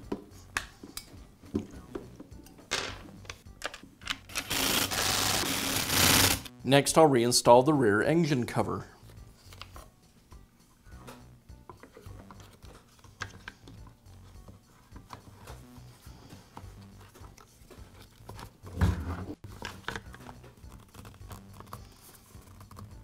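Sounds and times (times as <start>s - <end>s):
quiet background music: 0.0s - 23.0s
plastic clicks and rattles: 2.9s - 4.3s.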